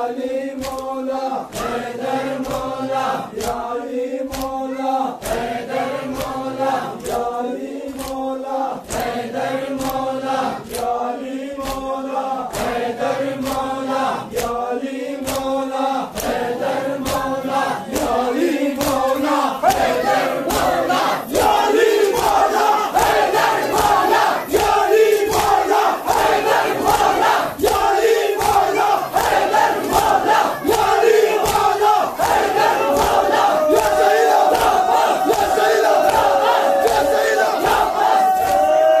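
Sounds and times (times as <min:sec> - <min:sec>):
hands slapping chests: 0:00.6 - 0:01.8, 0:02.4 - 0:07.3, 0:07.9 - 0:11.0, 0:11.6 - 0:12.8, 0:13.4 - 0:14.6, 0:15.2 - 0:39.0
men chanting and calling out: 0:09.4 - 0:39.0.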